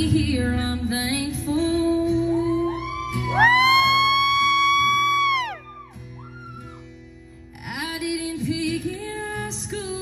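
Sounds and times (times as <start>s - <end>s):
country band playing: 0.0s - 9.7s.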